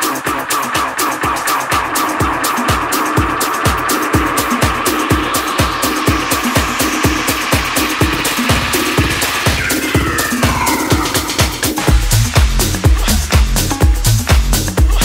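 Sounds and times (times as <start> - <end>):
tech house dance music: 0.0 - 15.0
rising noise sweep: 2.9 - 12.4.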